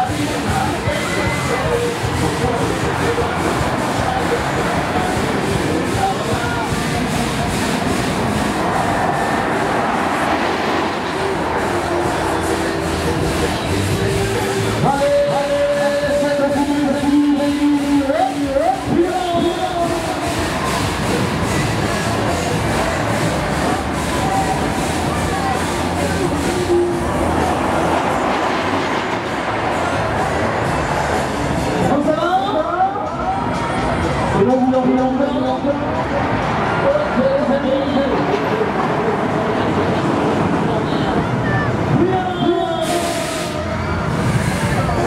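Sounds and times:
crowd noise: 0.0 - 45.0
ride machinery rumble: 0.0 - 45.0.

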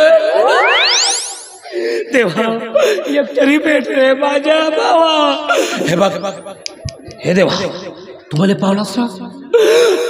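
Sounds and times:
rising whistle-like sweep: 0.3 - 1.7.

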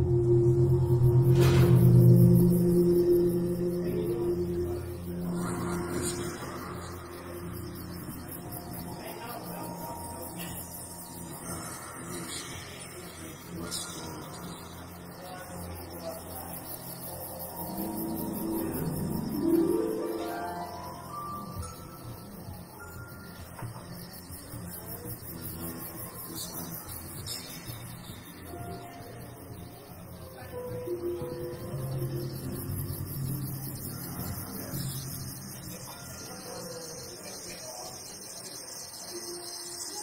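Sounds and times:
pitch sweeping upward: 0.0 - 6.2, 17.3 - 21.6
ambient psychedelic drone music: 0.0 - 40.0.

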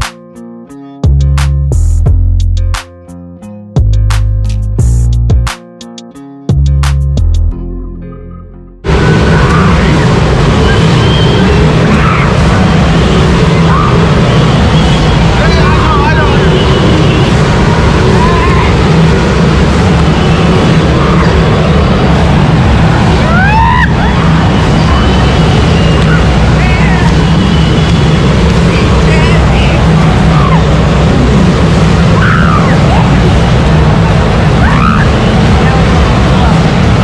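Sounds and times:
loud low rumble: 8.8 - 37.0
people shouting and whooping: 9.0 - 12.7, 13.3 - 14.4, 17.8 - 19.0, 23.0 - 27.1, 30.0 - 30.9, 32.0 - 33.4, 34.3 - 35.9.

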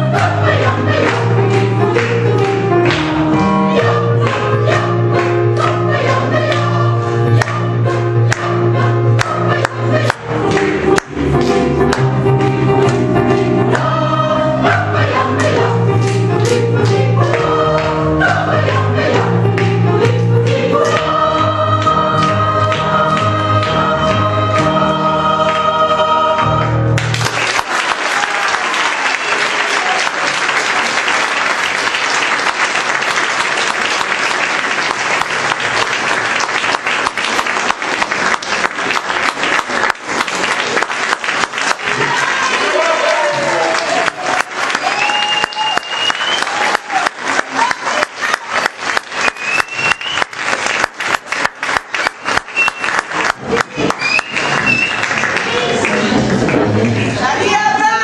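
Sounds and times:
audience applause: 0.0 - 6.8, 9.2 - 14.0, 26.9 - 58.0
choir holding a chord: 0.0 - 27.1
rhythmic clapping in unison: 0.0 - 57.5
people cheering: 27.0 - 37.5, 39.2 - 58.0.

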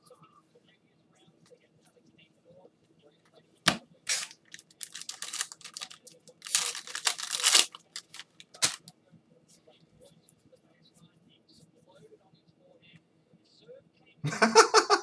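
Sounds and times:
foil wrapper snapping: 4.1 - 8.8
foil wrapper tearing and crinkling: 4.1 - 8.8.

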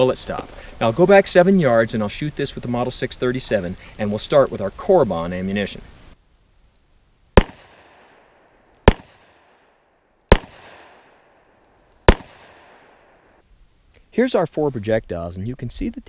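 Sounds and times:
revolver gunshots with echo: 7.4 - 9.7, 10.3 - 11.4, 12.1 - 13.2.

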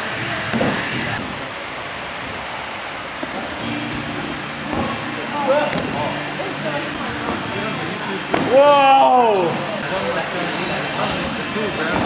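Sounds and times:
room noise hiss: 0.0 - 12.0
faint muffled voices: 4.8 - 12.0.

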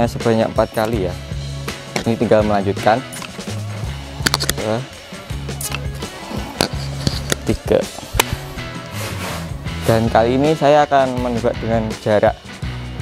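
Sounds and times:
background music: 0.0 - 13.0
air rifle pump lever clacks: 3.1 - 3.4, 4.2 - 4.6.

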